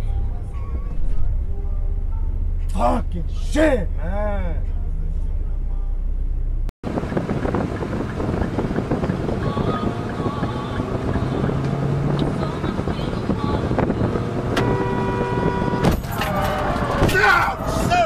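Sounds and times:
road and wind noise in car: 0:00.0 - 0:18.0
truck low rumble: 0:00.0 - 0:18.0
car horn: 0:12.4 - 0:17.9.

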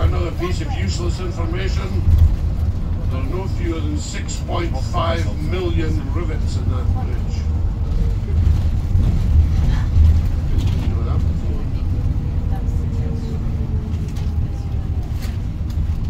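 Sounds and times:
bus engine and road rumble: 0:00.0 - 0:16.0.

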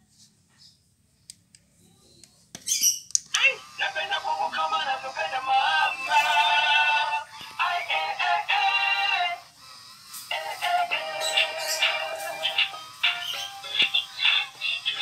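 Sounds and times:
toy speaker playing song: 0:03.4 - 0:15.0
high thin singing: 0:10.1 - 0:15.0.

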